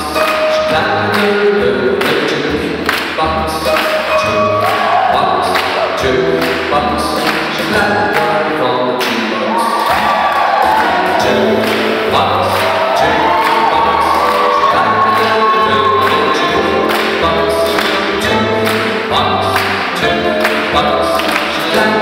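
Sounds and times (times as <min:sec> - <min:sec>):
big band playing swing music: 0:00.0 - 0:22.0.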